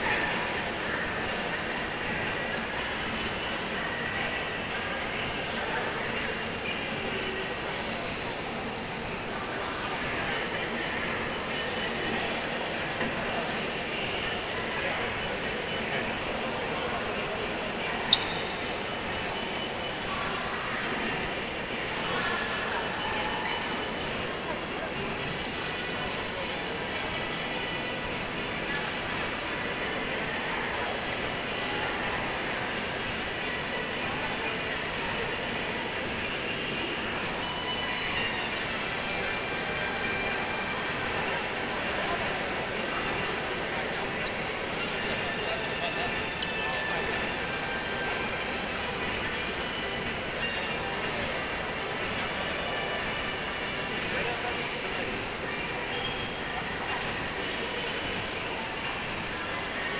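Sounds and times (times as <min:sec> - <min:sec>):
faint indistinct voices: 0:00.0 - 0:59.9
indoor background hubbub: 0:00.0 - 0:59.9.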